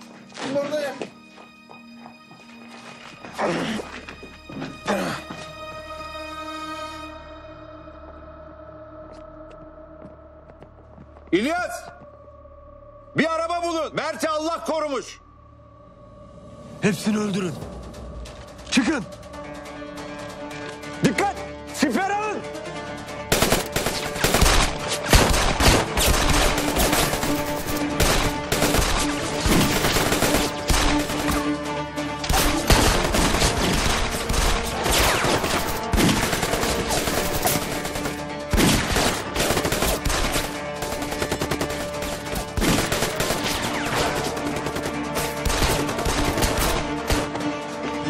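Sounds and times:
dramatic music score: 0:00.0 - 0:48.0
rapid gunfire volleys: 0:23.3 - 0:31.5, 0:32.3 - 0:47.2.

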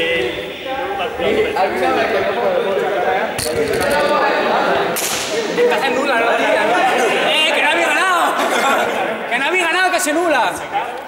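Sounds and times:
people talking over one another: 0:00.0 - 0:11.0
sharp smack: 0:05.0 - 0:05.4.

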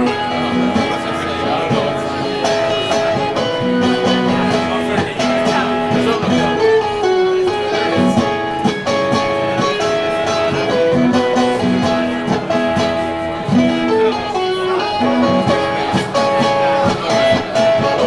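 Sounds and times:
acoustic guitar playing: 0:00.0 - 0:18.0.

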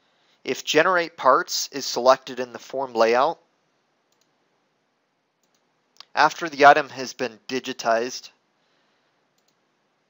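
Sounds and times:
computer mouse clicks: 0:04.1 - 0:04.4, 0:05.4 - 0:06.1, 0:09.4 - 0:09.6.

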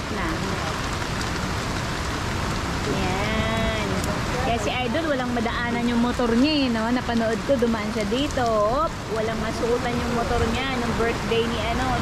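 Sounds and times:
heavy rain on ground and roof: 0:00.0 - 0:12.0
person's voice: 0:02.9 - 0:12.0.

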